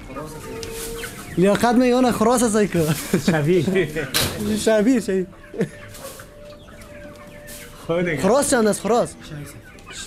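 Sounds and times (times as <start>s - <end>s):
chickens clucking softly: 0.0s - 10.0s.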